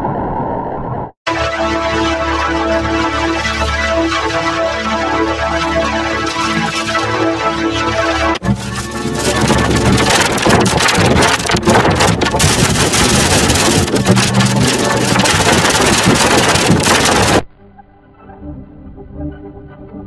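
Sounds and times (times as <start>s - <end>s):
distorted noisy jingle: 1.3s - 17.5s
sustained synthesizer music: 1.3s - 20.0s.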